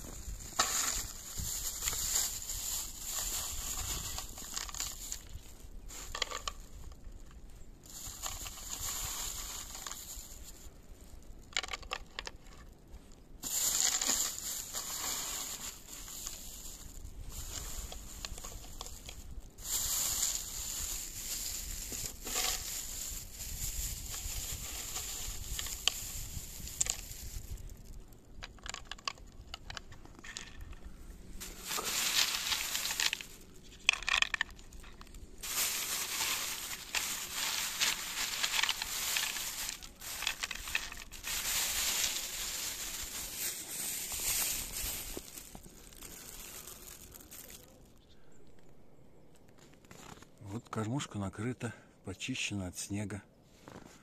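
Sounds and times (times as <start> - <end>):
crunching and scraping snow: 0.0 - 48.0, 49.6 - 51.2, 53.5 - 54.0.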